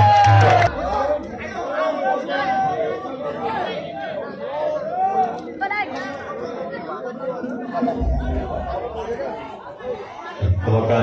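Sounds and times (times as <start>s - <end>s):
spectators chattering: 0.0s - 11.0s
low thump: 8.0s - 9.2s.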